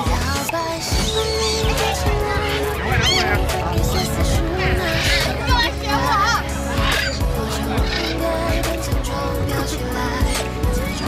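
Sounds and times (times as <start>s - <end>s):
background music: 0.0s - 11.0s
parrots squawking: 0.6s - 8.7s.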